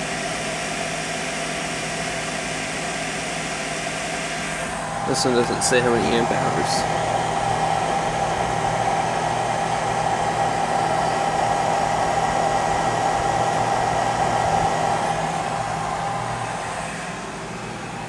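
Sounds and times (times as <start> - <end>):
electric fans whirring: 0.0 - 18.0
low hum: 4.5 - 18.0.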